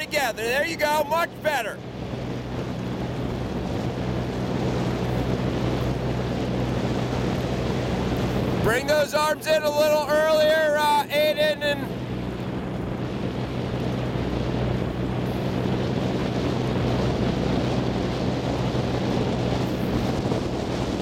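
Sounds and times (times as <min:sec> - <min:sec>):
outboard motor humming: 0:00.0 - 0:21.0
wind buffeting microphone: 0:00.0 - 0:21.0.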